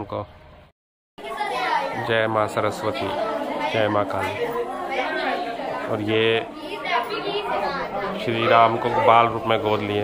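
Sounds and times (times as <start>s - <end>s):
people chattering: 1.2s - 10.0s.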